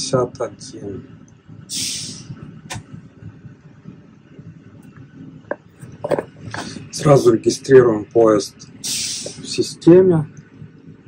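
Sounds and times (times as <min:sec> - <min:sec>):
low hum of train cab: 0:00.0 - 0:11.0
short hiss: 0:01.7 - 0:02.8, 0:08.8 - 0:09.6.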